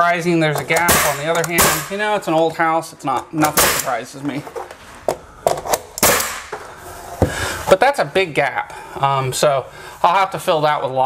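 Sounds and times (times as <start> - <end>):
nail gun shots: 0.8 - 2.0, 3.5 - 4.0, 6.0 - 6.5.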